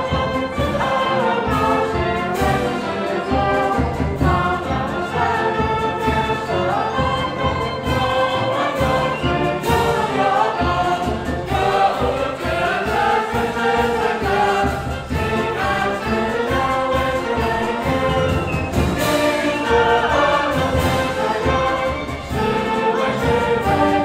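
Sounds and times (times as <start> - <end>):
choir of students singing: 0.0 - 24.0
concert band playing: 0.0 - 24.0.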